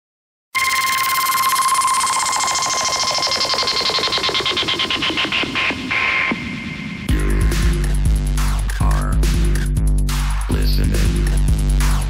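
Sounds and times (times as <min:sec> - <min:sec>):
high beep tone: 0:00.6 - 0:03.1
pulsing synthesizer noise sweep: 0:00.6 - 0:10.4.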